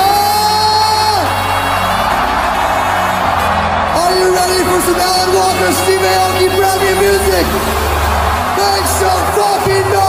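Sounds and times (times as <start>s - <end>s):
crowd cheering: 0.0s - 10.0s
electronic dance music: 0.0s - 10.0s.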